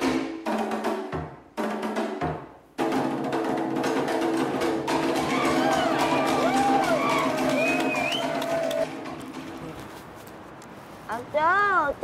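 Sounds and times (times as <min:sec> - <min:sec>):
rapid drum strikes: 0:00.0 - 0:09.8.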